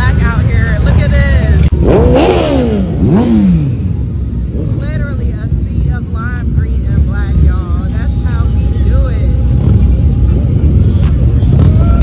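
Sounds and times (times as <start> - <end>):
many motorcycle engines rumbling: 0.0 - 12.0
voices: 0.0 - 12.0.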